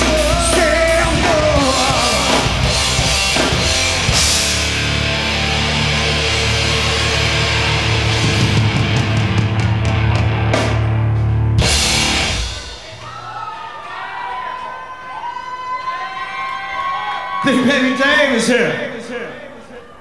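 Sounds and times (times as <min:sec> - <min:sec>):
rock band playing: 0:00.0 - 0:13.4
audience cheering and whistling: 0:12.6 - 0:18.2.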